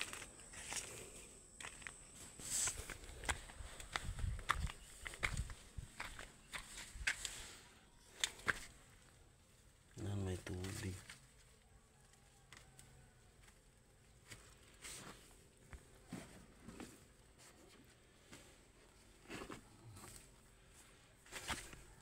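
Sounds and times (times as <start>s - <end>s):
faint footsteps on soil: 0.0s - 8.8s
rustling: 12.5s - 22.0s.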